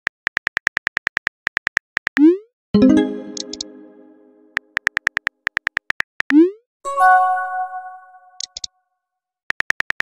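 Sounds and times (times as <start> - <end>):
bright chime chord: 2.8 - 4.5, 6.9 - 8.3
phone keyboard typing clicks: 3.3 - 3.7, 8.4 - 8.7, 9.5 - 10.0.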